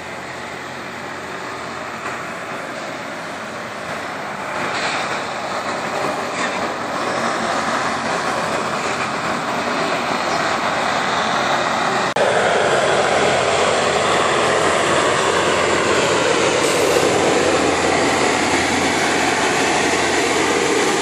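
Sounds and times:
rail grinder rasping on track: 0.0 - 21.0.

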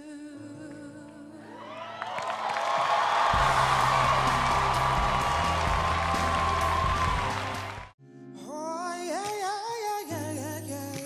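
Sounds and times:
audience cheering and applauding: 1.5 - 8.0
band music: 3.3 - 8.0.

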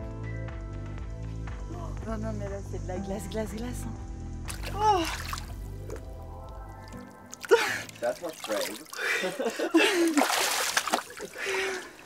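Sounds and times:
background music: 0.0 - 11.8
woman gasping and squealing: 4.6 - 5.4.

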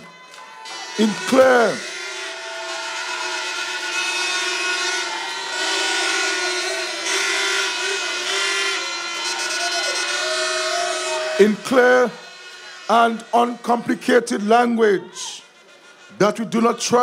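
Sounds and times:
crowd cheering: 0.0 - 17.0
horns blowing: 0.0 - 17.0.

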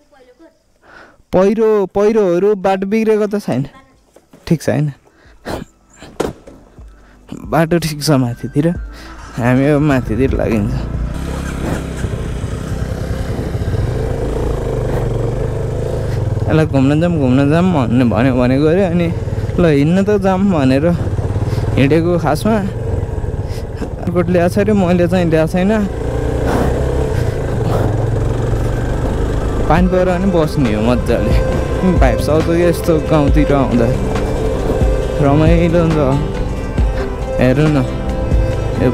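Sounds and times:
motorcycle engine rumbling: 5.0 - 38.9
tyres on gravel: 9.1 - 38.9
person speaking: 29.6 - 34.1.

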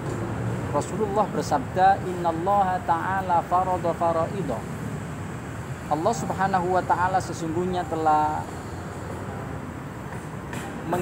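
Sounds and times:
road traffic rumble: 0.0 - 11.0
man talking: 0.7 - 4.7, 5.8 - 8.6.

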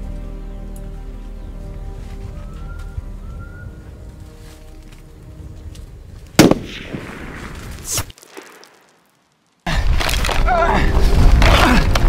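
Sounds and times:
soft film score music: 0.0 - 6.8
loud gunshot: 6.4 - 8.0.

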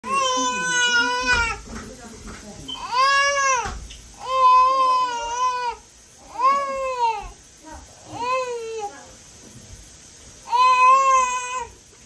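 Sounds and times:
baby yelling: 0.0 - 1.6, 2.8 - 7.3, 10.5 - 11.8.

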